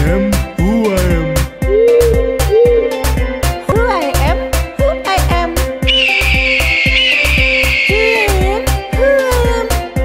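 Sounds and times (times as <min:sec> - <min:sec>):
upbeat dance music: 0:05.2 - 0:09.6
eagle screech: 0:05.9 - 0:08.4.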